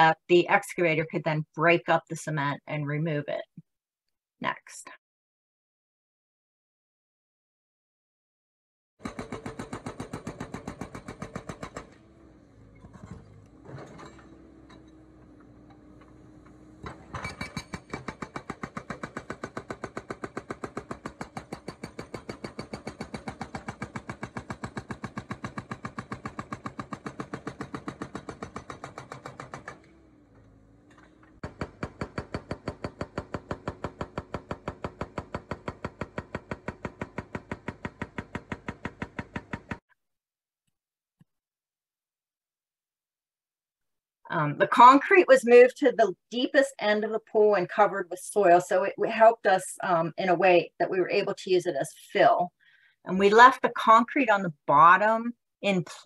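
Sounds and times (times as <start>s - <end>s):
hydraulic breaker hammering concrete: 9.0s - 39.8s.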